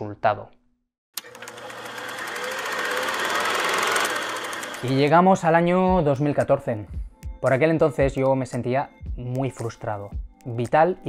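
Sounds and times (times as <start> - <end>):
fast mechanical rattling: 1.2 - 5.1.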